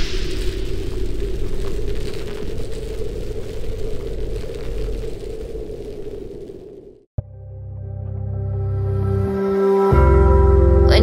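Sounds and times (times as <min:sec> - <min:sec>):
dense steady rumble with crackle: 0:00.0 - 0:07.1.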